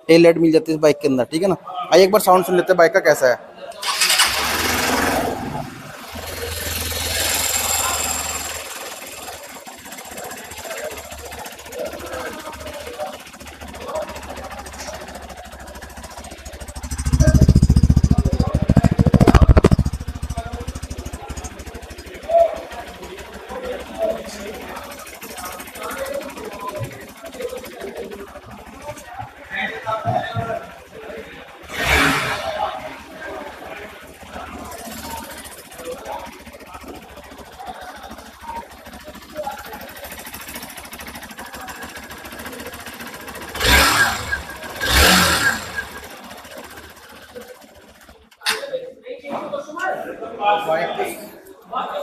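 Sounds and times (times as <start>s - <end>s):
motorcycle electric starter: 3.7s - 48.9s
motorcycle engine idling and revving: 3.8s - 48.4s.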